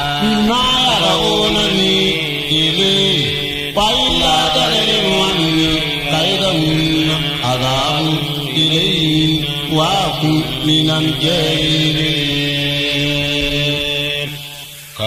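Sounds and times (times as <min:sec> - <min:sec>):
man chanting: 0:00.0 - 0:15.0.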